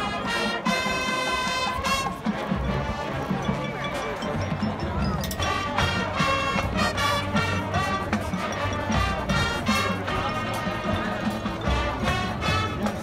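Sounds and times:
brass chords: 0:00.0 - 0:04.8, 0:05.4 - 0:13.0
drums and percussion: 0:00.0 - 0:13.0.

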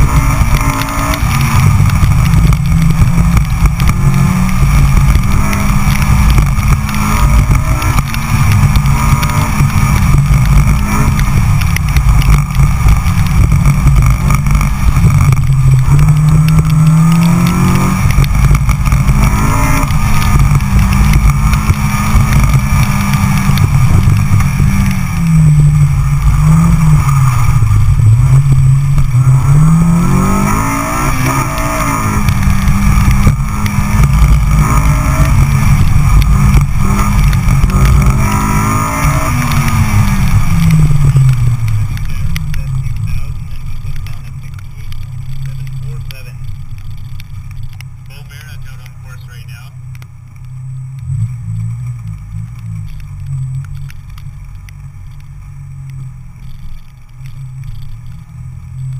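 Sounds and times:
sports car engine revving: 0:00.0 - 0:58.9.

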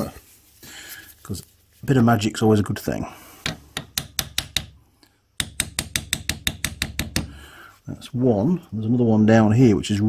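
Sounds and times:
hammer tapping metal punch: 0:03.4 - 0:04.8, 0:05.4 - 0:07.4.

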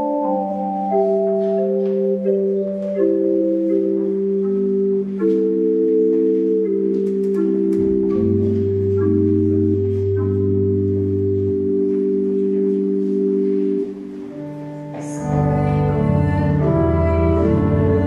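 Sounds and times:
organ chords: 0:00.0 - 0:18.0.

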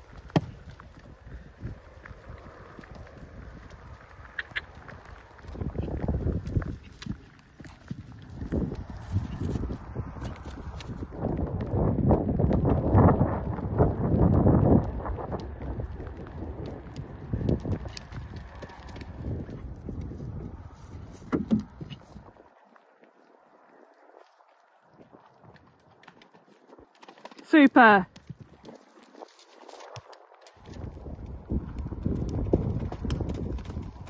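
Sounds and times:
hoofbeats on grass: 0:00.0 - 0:23.2, 0:24.2 - 0:34.0
wind rumbling on microphone: 0:00.0 - 0:34.0.

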